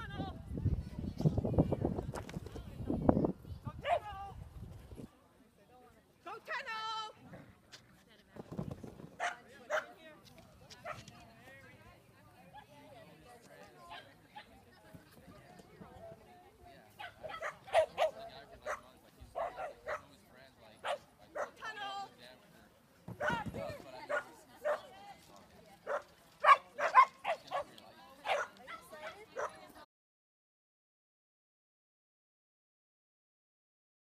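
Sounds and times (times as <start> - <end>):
dog barking: 17.0 - 18.8, 19.4 - 20.1, 20.8 - 21.6, 24.1 - 24.9, 25.9 - 29.6.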